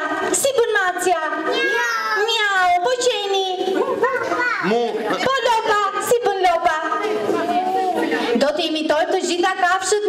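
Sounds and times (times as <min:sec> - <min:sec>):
children calling out and chattering: 0:01.4 - 0:06.1, 0:06.9 - 0:08.4.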